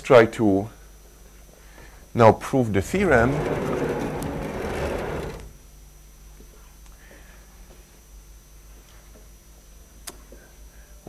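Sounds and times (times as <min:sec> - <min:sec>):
sliding chalkboard panel rumbling: 0:02.8 - 0:05.6
low hum: 0:02.8 - 0:05.7.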